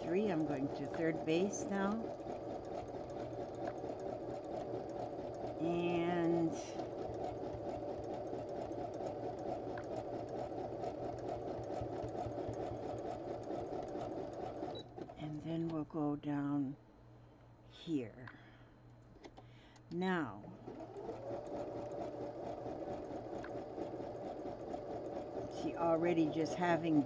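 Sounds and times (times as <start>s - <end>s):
sewing machine stitching: 0.0s - 15.8s, 20.1s - 27.0s.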